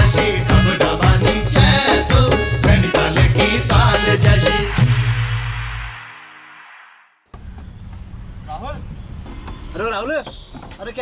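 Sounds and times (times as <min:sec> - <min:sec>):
song: 0:00.0 - 0:06.6
low outdoor rumble: 0:07.4 - 0:10.1.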